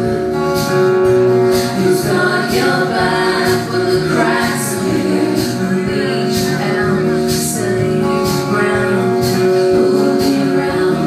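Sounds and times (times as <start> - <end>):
live trio instruments: 0.0 - 11.0.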